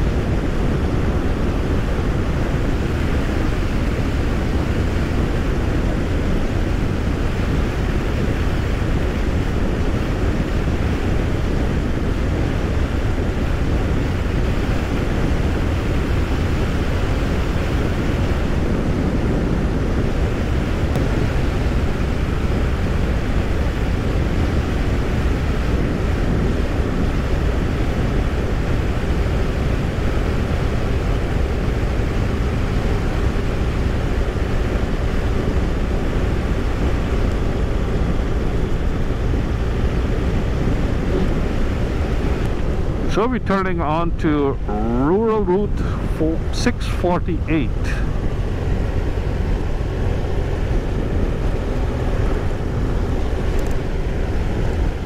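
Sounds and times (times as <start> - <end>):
motorcycle engine and tyre drone: 0.0 - 55.0
wind rush: 0.0 - 55.0.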